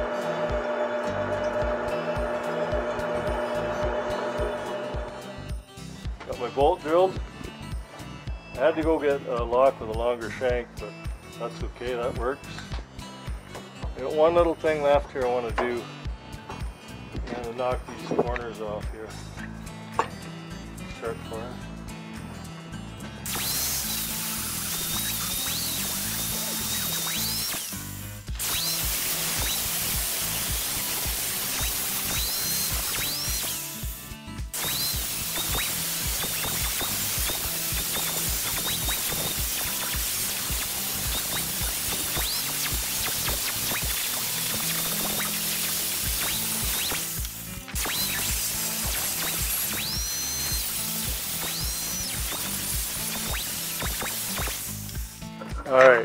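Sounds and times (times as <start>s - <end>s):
angle grinder grinding steel: 0.0s - 5.5s, 23.2s - 55.4s.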